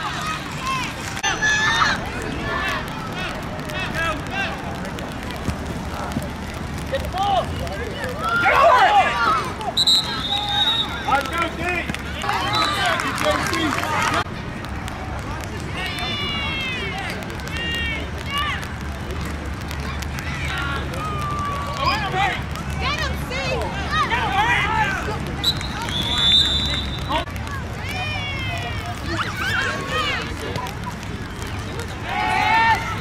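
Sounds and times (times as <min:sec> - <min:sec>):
coaches and spectators shouting: 0:00.0 - 0:33.0
referee's whistle: 0:09.8 - 0:11.2, 0:12.4 - 0:13.0, 0:25.4 - 0:27.2.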